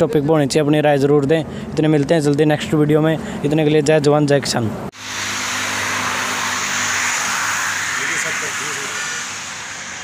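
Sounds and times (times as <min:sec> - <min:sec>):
highway traffic passing: 0:04.7 - 0:10.0.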